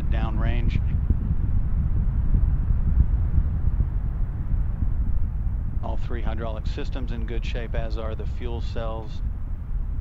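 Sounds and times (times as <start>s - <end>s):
rocket engines rumbling: 0.0s - 10.0s.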